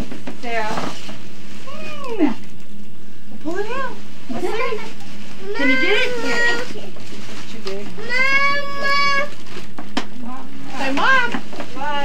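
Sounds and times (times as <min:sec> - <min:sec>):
soft voices: 0:01.6 - 0:02.6, 0:03.4 - 0:09.4
child's high drawn-out vocal: 0:08.0 - 0:09.4.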